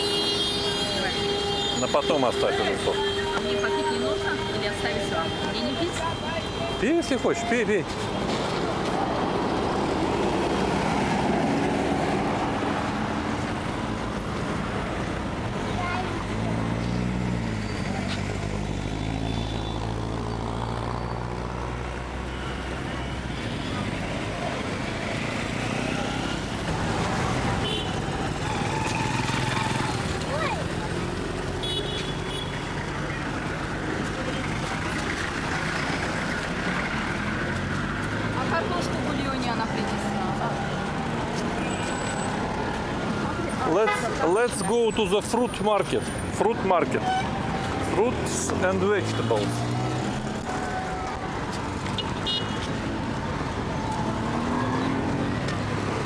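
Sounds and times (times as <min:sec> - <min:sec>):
passing cars and motorbikes: 0:00.0 - 0:56.0.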